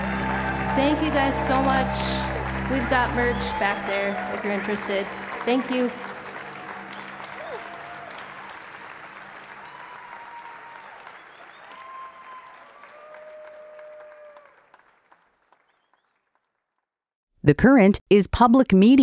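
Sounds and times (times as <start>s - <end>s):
audience applauding: 0.0s - 16.8s.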